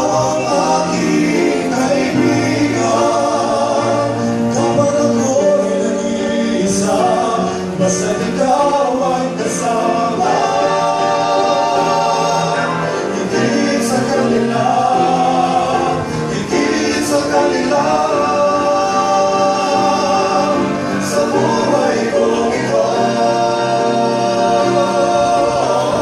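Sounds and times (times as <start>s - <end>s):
male vocal quartet singing: 0.0s - 26.0s.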